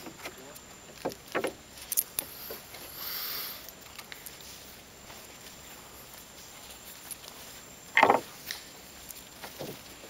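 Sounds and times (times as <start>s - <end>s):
handling sounds in wooden boat: 0.0s - 2.7s, 7.9s - 8.4s, 9.4s - 10.0s.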